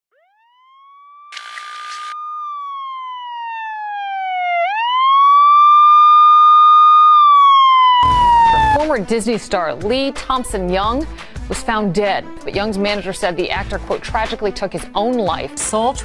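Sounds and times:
siren wailing: 0:00.1 - 0:08.9.

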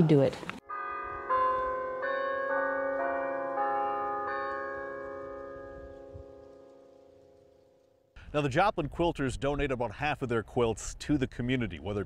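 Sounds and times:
church bells chiming: 0:00.6 - 0:07.8.

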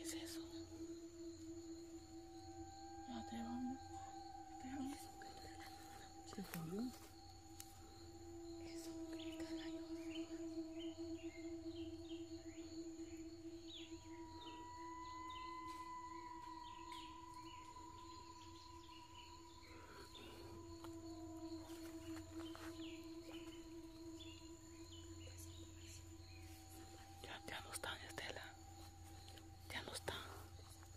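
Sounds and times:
eerie drone of held tones: 0:00.0 - 0:30.9.

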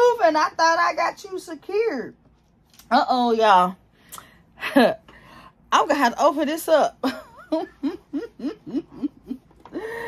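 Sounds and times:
woman laughing: 0:07.0 - 0:10.0.

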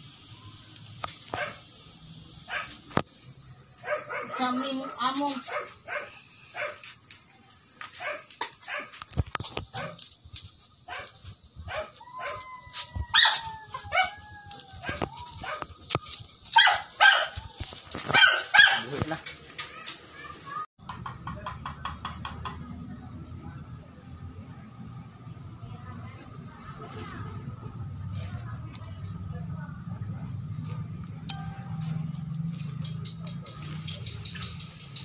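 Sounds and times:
dog barking: 0:01.3 - 0:01.6, 0:02.5 - 0:02.8, 0:03.8 - 0:06.8, 0:08.0 - 0:09.0, 0:09.8 - 0:10.0, 0:10.9 - 0:12.4, 0:16.6 - 0:17.4, 0:18.1 - 0:18.9.

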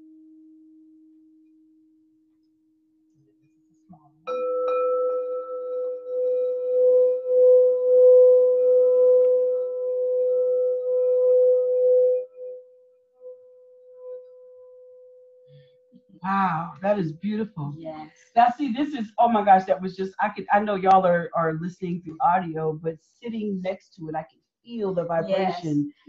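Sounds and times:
low singing bowl tone: 0:04.3 - 0:16.1.

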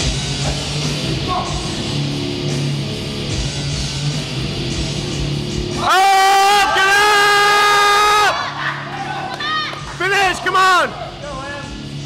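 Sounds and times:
rock music: 0:00.0 - 0:12.0.

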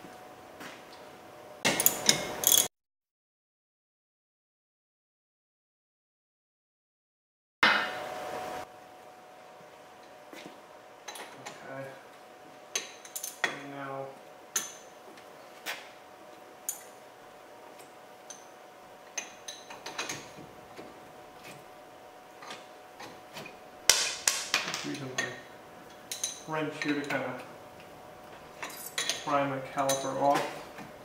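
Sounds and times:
screwdriver clinking against metal: 0:01.8 - 0:02.7.

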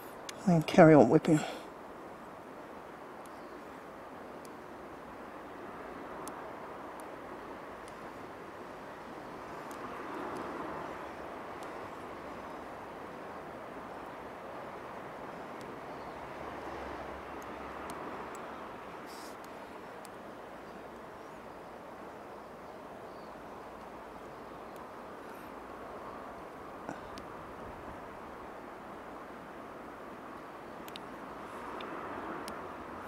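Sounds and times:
faint clicks from handling thread: 0:30.8 - 0:31.1.

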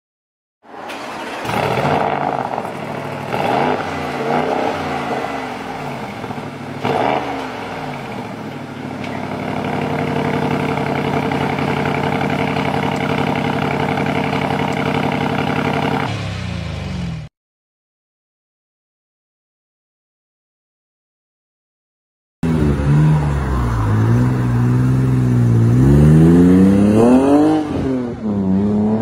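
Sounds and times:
exhaust crack: 0:00.8 - 0:16.9
car engine revving: 0:00.9 - 0:17.3, 0:22.4 - 0:29.0.

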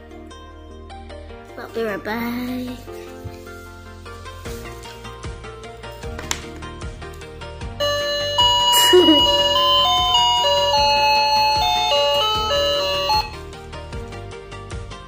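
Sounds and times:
quiet background music: 0:00.0 - 0:15.0
toy music box melody: 0:07.8 - 0:13.4.

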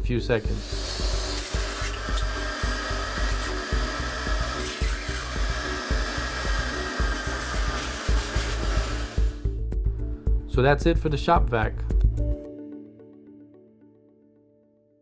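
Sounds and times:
background music with a beat: 0:00.1 - 0:12.9
hose slurping water: 0:00.5 - 0:09.4
wet dry vacuum motor whine: 0:00.5 - 0:09.4.

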